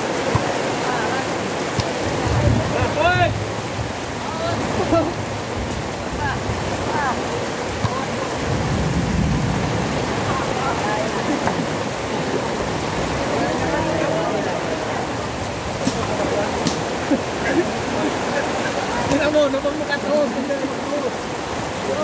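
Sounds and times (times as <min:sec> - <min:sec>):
heavy rain falling: 0:00.0 - 0:22.0.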